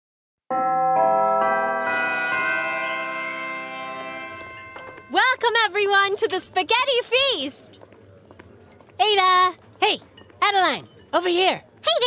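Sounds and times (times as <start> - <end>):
church bells ringing: 0.5 - 5.8.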